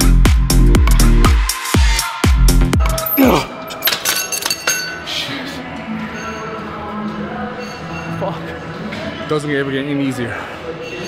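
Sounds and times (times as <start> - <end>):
metallic clinks of weight stack: 3.7 - 5.1.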